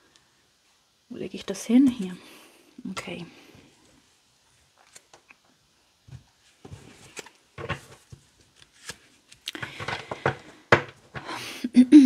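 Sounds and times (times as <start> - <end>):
cards shuffling: 6.6 - 11.3
cards tapping and sliding on table: 9.6 - 11.3.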